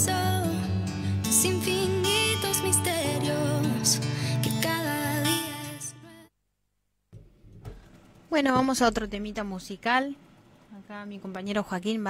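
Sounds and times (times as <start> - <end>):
faint studio room noise: 6.1 - 12.0
soft knock: 7.1 - 8.0.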